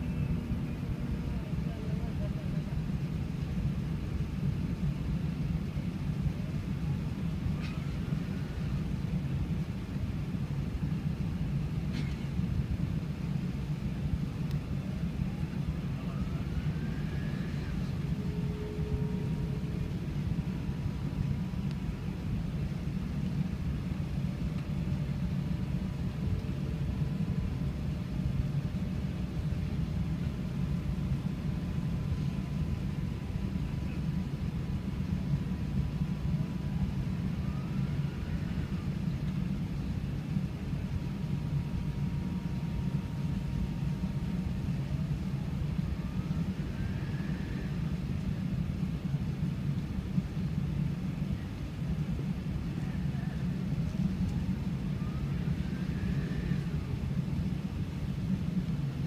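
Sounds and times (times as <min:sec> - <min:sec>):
aircraft cabin rumble: 0:00.0 - 0:59.0.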